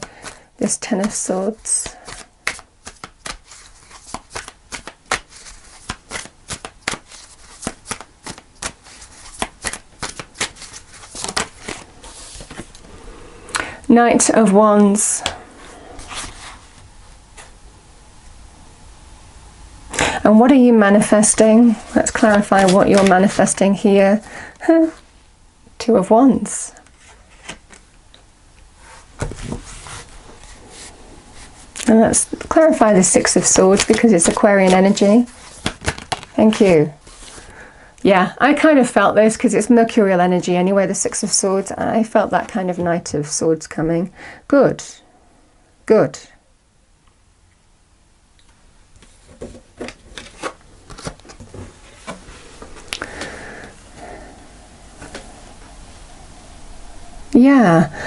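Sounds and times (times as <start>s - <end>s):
cards being shuffled: 1.0s - 12.9s, 21.2s - 23.6s, 26.8s - 27.9s, 29.2s - 37.5s, 49.0s - 53.3s
card sliding across cloth: 15.2s - 16.8s.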